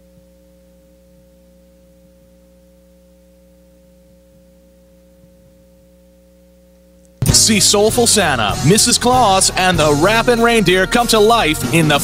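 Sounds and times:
faint electrical hum: 0:00.0 - 0:08.5.

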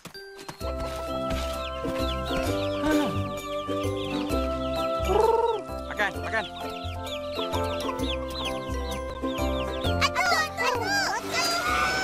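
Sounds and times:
chickens clucking: 0:00.8 - 0:12.0.

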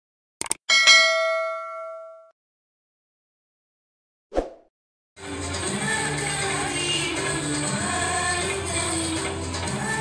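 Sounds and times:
bright bell ding: 0:00.7 - 0:02.3.

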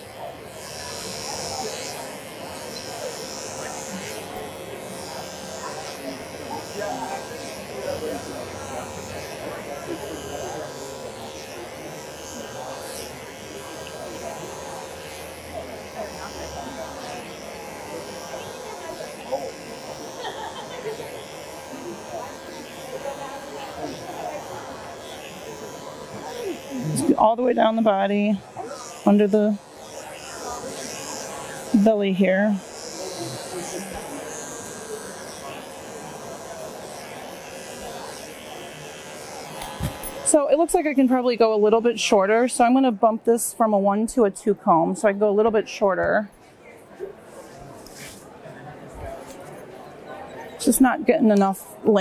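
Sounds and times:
dog clipper buzzing: 0:00.0 - 0:43.8, 0:47.2 - 0:48.3, 0:50.5 - 0:52.0.

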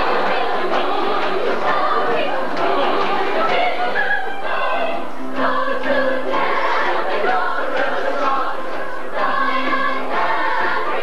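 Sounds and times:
chorus singing: 0:00.0 - 0:11.0.

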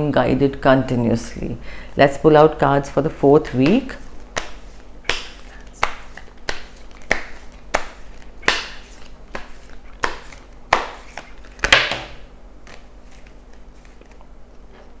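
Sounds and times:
cards being shuffled: 0:03.4 - 0:14.9.

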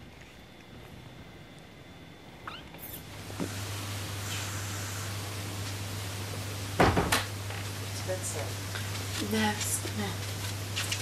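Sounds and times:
electrical hum with hiss: 0:00.0 - 0:11.0
loud knocks: 0:06.8 - 0:07.3.

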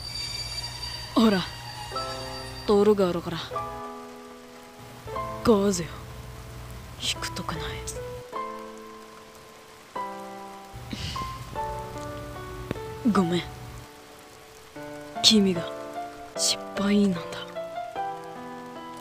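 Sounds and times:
soft background music: 0:00.0 - 0:19.0
steady rain: 0:00.0 - 0:19.0.

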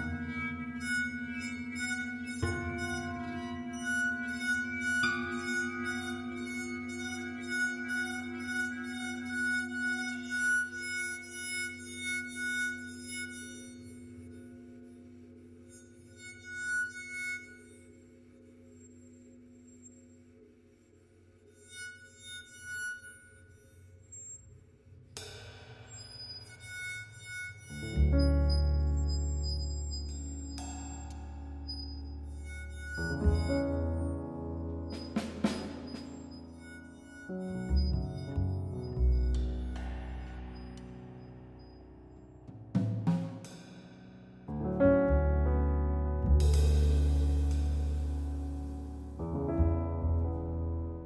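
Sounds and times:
low drone: 0:43.4 - 0:51.0.

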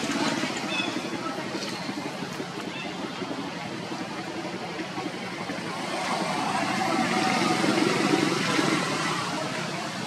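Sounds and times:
vehicle engine passing by: 0:05.5 - 0:10.0.

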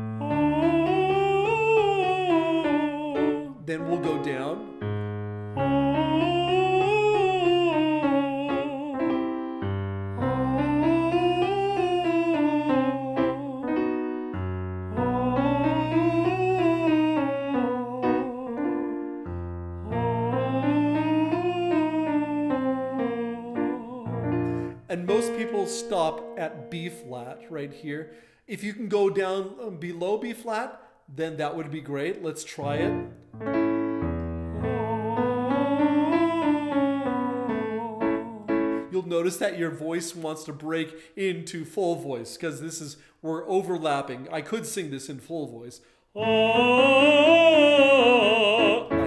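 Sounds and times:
piano accompaniment: 0:00.0 - 0:28.2, 0:32.6 - 0:40.0, 0:46.2 - 0:49.0
man singing in falsetto: 0:00.2 - 0:04.7, 0:05.6 - 0:09.2, 0:10.5 - 0:13.8, 0:15.0 - 0:18.9, 0:46.2 - 0:49.0.

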